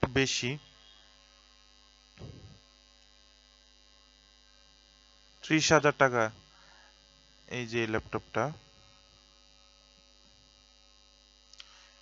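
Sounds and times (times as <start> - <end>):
man speaking: 0.0 - 0.6, 5.4 - 6.4, 7.5 - 8.6
electrical mains hum: 0.0 - 12.0.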